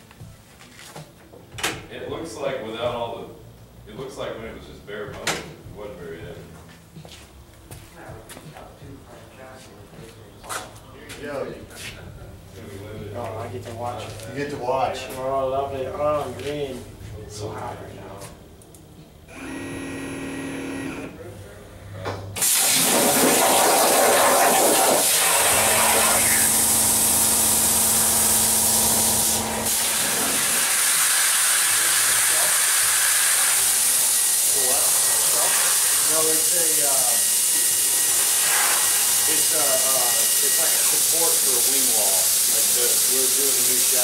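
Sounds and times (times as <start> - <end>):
plasma torch hissing: 22.4 - 44.0.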